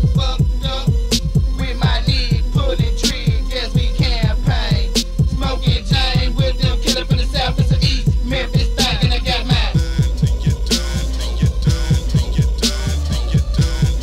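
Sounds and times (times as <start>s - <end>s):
rapping over a beat: 0.0s - 14.0s
steady synth tones: 0.0s - 14.0s.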